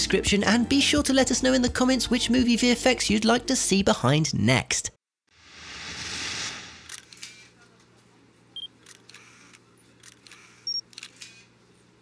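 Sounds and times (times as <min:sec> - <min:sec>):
camera shutter clicks: 0:08.8 - 0:11.5.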